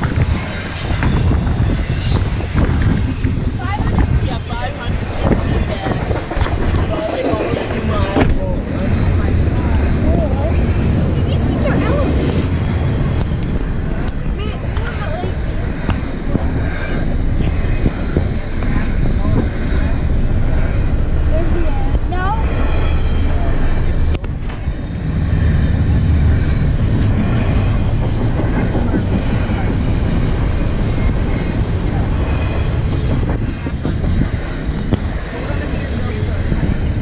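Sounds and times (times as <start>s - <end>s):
train wheels rumbling on rail: 0.0s - 37.0s.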